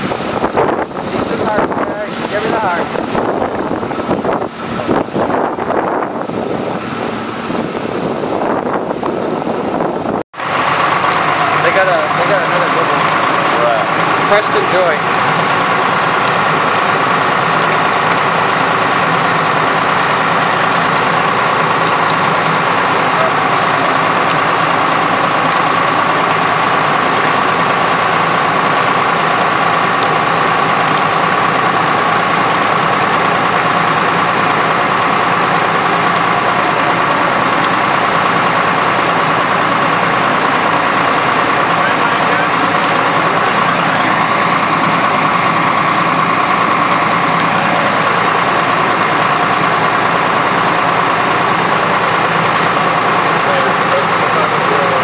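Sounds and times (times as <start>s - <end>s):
fire engine running: 0.0s - 55.0s
high whine: 0.0s - 55.0s.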